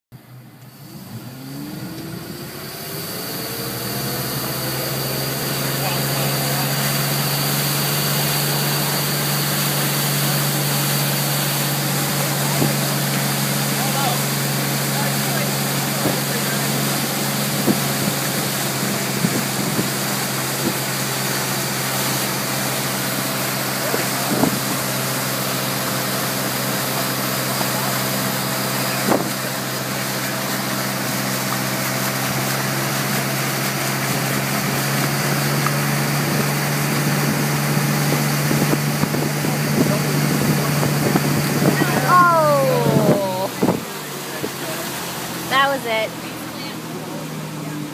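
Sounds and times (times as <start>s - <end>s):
boat engine running: 0.2s - 47.9s
water and wind rushing: 0.8s - 47.9s.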